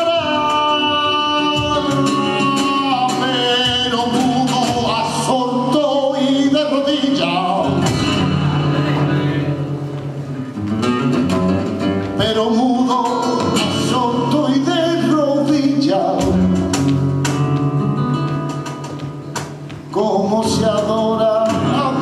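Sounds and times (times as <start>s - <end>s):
man singing flamenco: 0.0s - 10.2s, 11.0s - 22.0s
cajon drum: 0.0s - 22.0s
flamenco guitar: 0.0s - 22.0s.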